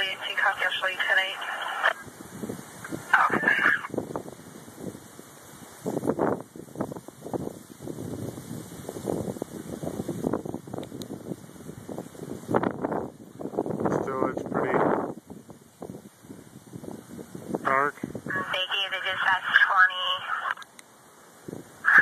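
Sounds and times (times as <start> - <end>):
police scanner radio speech: 0.0 - 2.0, 3.1 - 3.9, 17.7 - 20.6
wind buffeting microphone: 0.0 - 20.4, 21.4 - 22.0.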